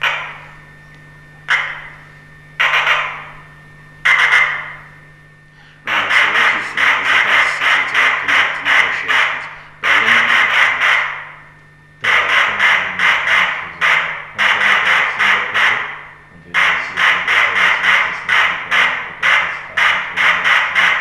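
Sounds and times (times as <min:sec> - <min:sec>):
pulsing hiss noise: 0:01.5 - 0:21.0.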